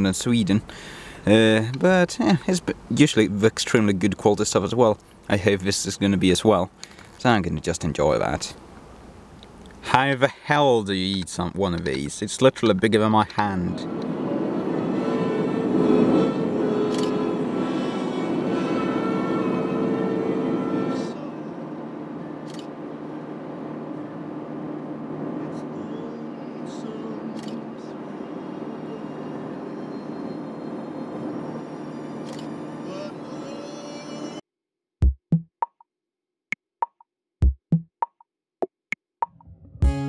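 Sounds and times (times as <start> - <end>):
van engine and road noise: 0.0 - 10.1, 20.5 - 29.8.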